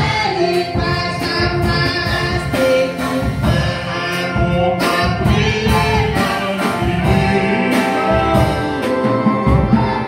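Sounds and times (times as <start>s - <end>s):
woman singing gospel: 0.0s - 8.6s.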